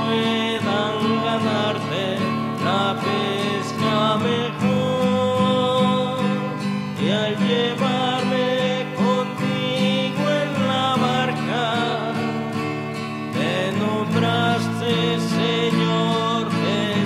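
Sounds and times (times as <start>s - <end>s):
acoustic guitar: 0.0s - 17.0s
hymn singing: 0.0s - 17.0s.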